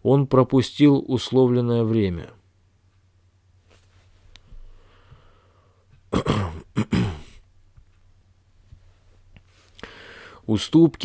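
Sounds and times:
person reading aloud: 0.0 - 2.4, 10.4 - 11.0
person coughing: 6.1 - 7.4.

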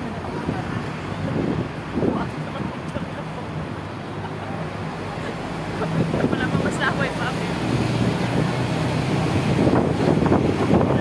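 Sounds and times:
wind rushing over microphone: 0.0 - 3.0, 5.8 - 11.0
bus engine drone: 0.0 - 11.0
street traffic: 0.0 - 11.0.

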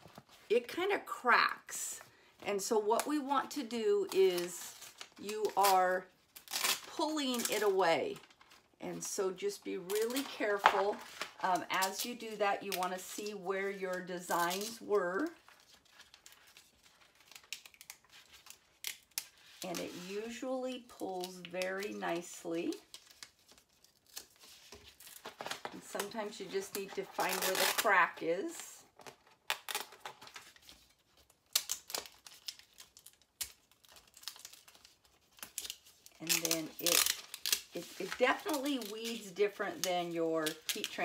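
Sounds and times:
ink sheet crackling as peeled: 4.3 - 8.8, 9.9 - 28.2, 28.9 - 41.0
person speaking: 25.8 - 28.8, 36.2 - 37.1.

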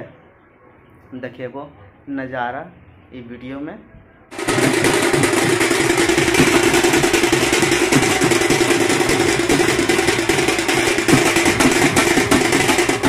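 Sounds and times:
street procession din: 4.3 - 13.0.

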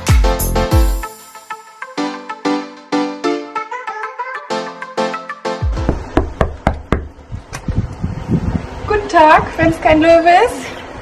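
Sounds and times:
knuckles knocking on glass: 5.8 - 7.2.

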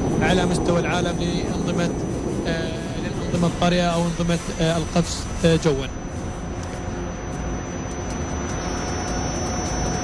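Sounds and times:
jet flying overhead: 0.0 - 10.0.

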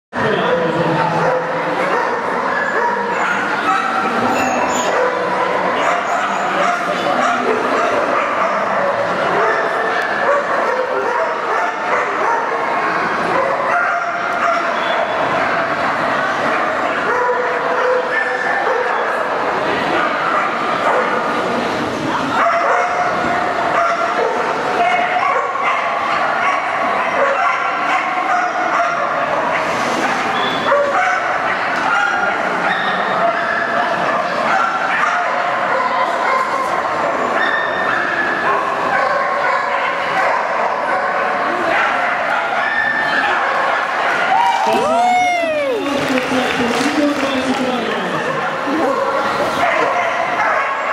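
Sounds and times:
dogs barking and yipping: 1.1 - 15.8, 16.5 - 19.2, 22.4 - 33.8, 34.4 - 44.3, 48.7 - 50.9
voices: 44.0 - 50.2.

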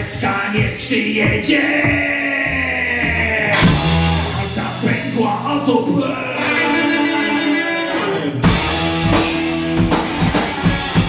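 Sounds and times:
bass notes: 0.0 - 11.0
drum and cymbal hit: 3.6 - 6.1, 8.4 - 11.0
electric guitars ringing chord: 6.4 - 11.0.

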